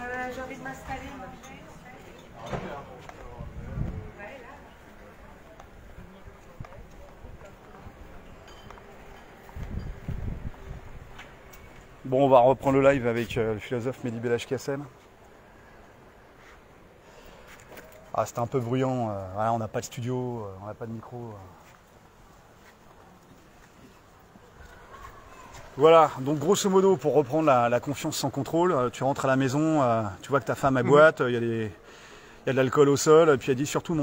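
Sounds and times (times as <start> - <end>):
faint city hum: 0.0 - 34.0.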